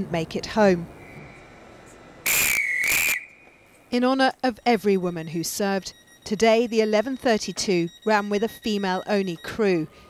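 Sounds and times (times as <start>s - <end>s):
shrill whistle blast: 2.2s - 3.4s.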